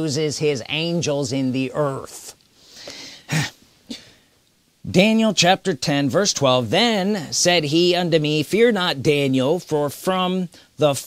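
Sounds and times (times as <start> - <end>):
soft breath: 2.5 - 3.3
man clearing his throat: 3.2 - 4.2.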